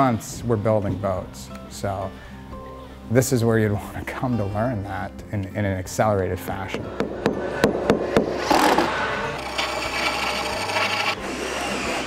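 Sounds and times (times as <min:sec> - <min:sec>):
hand tool cutting wood: 0:08.5 - 0:12.0.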